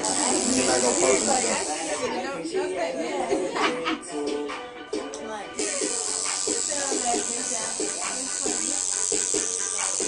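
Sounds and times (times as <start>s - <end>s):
tattoo machine buzzing: 0.0s - 2.1s, 5.6s - 10.0s
background music: 0.1s - 10.0s.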